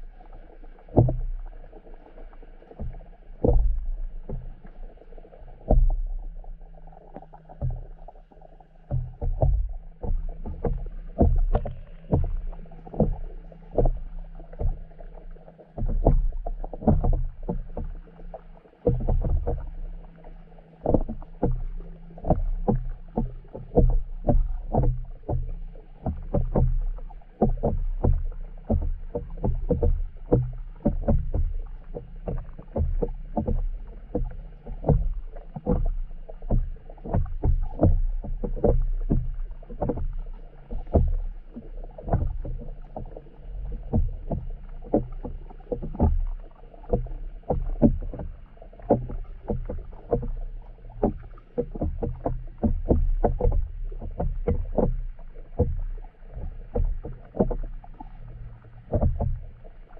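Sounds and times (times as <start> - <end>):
muffled underwater rumble: 0.0 - 59.9
rapid knocks and taps: 2.8 - 4.6, 8.9 - 15.0, 15.7 - 19.8, 20.8 - 59.4.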